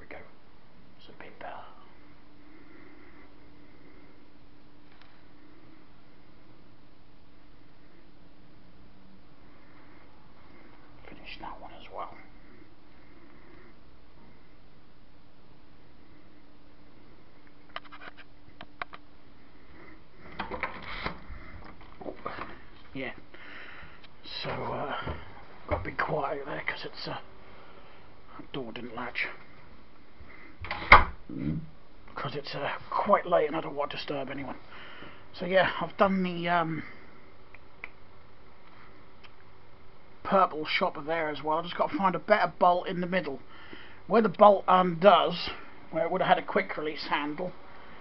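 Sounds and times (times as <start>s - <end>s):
man whispering: 0.0s - 0.4s, 1.0s - 4.1s, 10.0s - 14.4s, 24.2s - 27.4s, 28.3s - 29.6s, 31.3s - 34.7s
faint steady hum: 0.0s - 48.0s.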